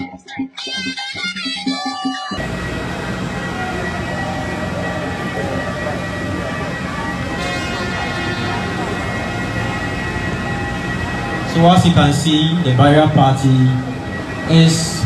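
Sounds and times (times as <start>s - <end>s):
high engine whine: 2.3s - 15.0s
aircraft engines roaring: 2.4s - 15.0s.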